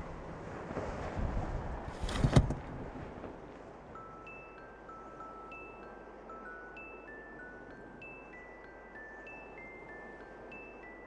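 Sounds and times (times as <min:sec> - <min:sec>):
soft bell-like melody: 0:03.8 - 0:11.0.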